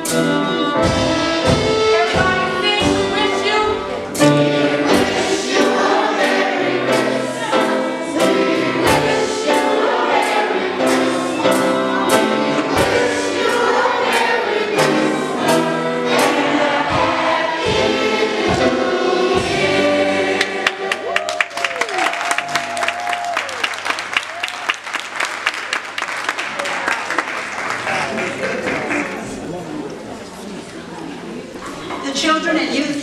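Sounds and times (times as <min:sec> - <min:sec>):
gospel choir singing over a beat: 0:00.0 - 0:03.2, 0:04.0 - 0:21.3
audience applause: 0:20.4 - 0:29.6
audience whooping: 0:20.8 - 0:25.8.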